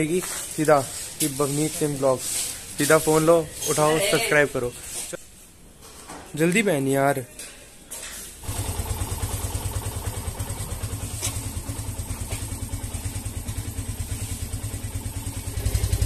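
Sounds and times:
motorcycle engine idling: 8.4s - 16.0s.

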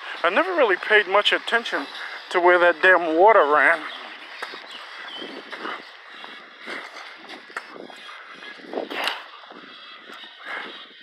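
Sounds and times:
footsteps on outdoor path: 0.0s - 11.0s.

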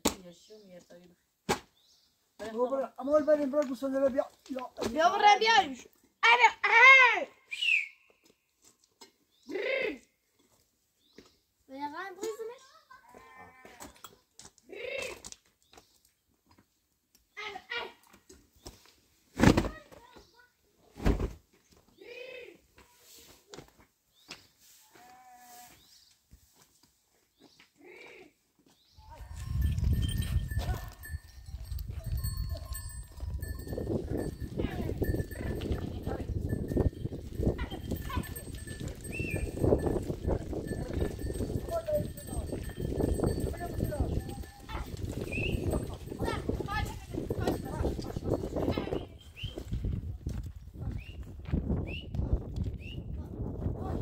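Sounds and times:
hooves clattering on stones: 3.4s - 6.1s, 12.2s - 17.3s, 28.6s - 51.8s
goats bleating: 13.0s - 13.9s
animal bells clanking: 29.1s - 49.4s.

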